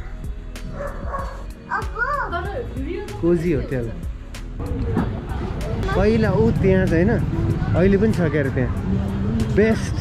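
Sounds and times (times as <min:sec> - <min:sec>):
dog barking: 0:00.7 - 0:01.5.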